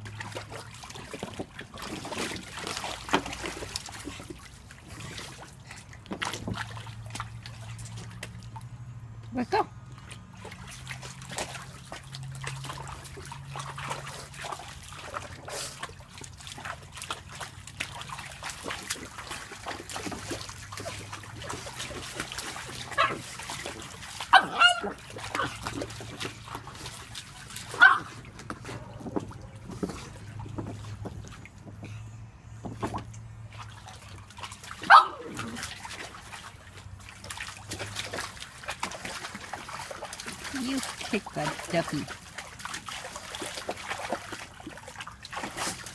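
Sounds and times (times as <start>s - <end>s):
dog splashing through water: 0.0s - 45.9s
dog making noise: 24.3s - 25.6s.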